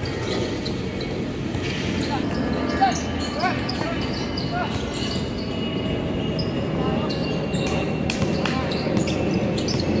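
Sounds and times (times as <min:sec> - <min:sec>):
sneakers squeaking: 0:00.0 - 0:10.0
players' voices: 0:01.4 - 0:10.0.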